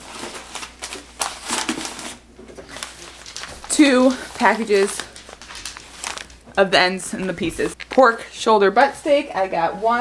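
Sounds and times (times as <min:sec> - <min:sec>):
paper packages rustling and crinkling: 0:00.0 - 0:08.1.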